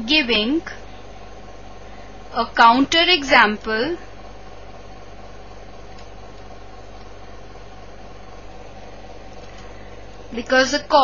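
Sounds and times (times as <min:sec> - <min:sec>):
low background hum and hiss: 0:00.0 - 0:11.0.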